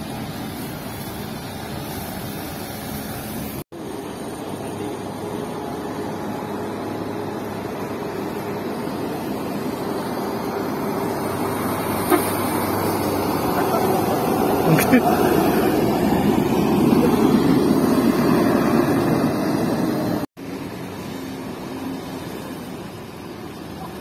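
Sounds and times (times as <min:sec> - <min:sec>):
diesel coach engine running: 0:02.6 - 0:24.0.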